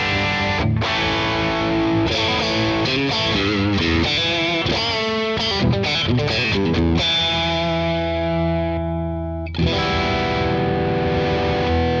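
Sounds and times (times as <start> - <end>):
overdriven electric guitar chords: 0.0 - 12.0.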